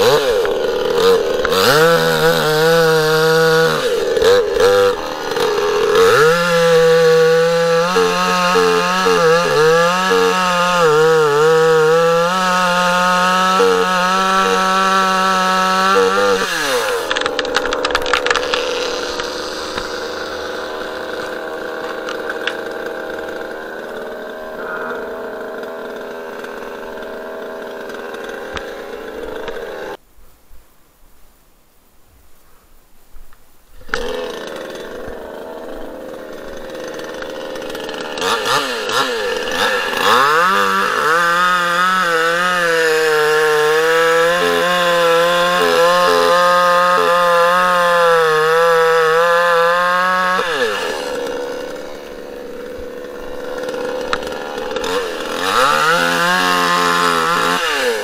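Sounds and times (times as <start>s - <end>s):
chainsaw cutting wood: 0.0s - 30.0s, 33.8s - 58.0s
chainsaw idling: 0.0s - 30.0s, 33.8s - 58.0s.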